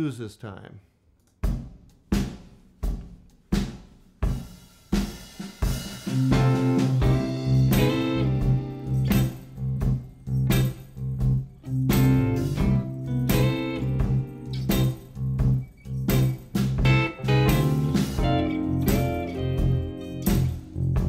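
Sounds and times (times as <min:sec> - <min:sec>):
drums: 0:01.2 - 0:21.0
electric guitar comping chords: 0:06.1 - 0:10.8, 0:11.7 - 0:15.2, 0:16.1 - 0:21.0
bass line: 0:06.1 - 0:21.0.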